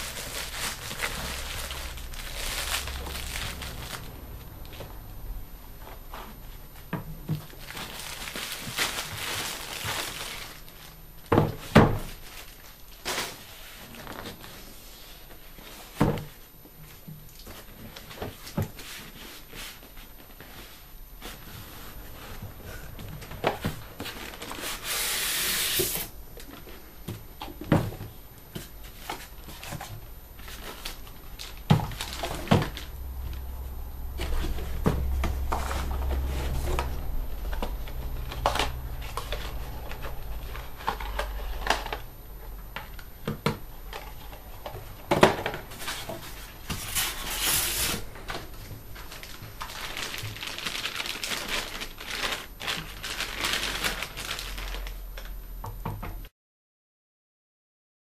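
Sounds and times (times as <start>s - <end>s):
plastic wrap crinkling: 0.0s - 5.0s, 5.9s - 14.6s, 23.6s - 26.9s, 28.9s - 33.5s, 43.9s - 55.4s.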